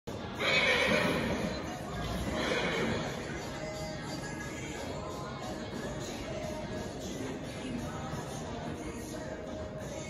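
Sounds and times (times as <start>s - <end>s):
background music: 0.1s - 10.0s
horse whinnying: 0.3s - 3.5s.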